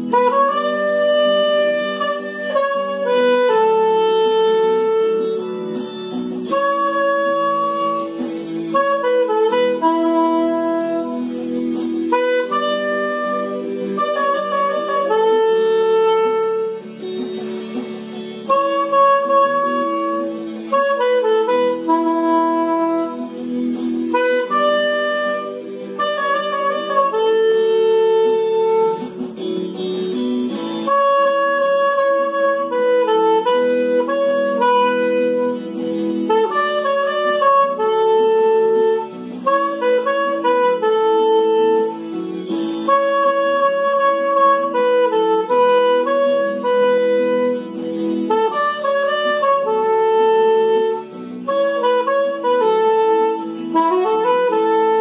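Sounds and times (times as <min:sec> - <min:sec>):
soprano saxophone melody: 0:00.0 - 0:55.0.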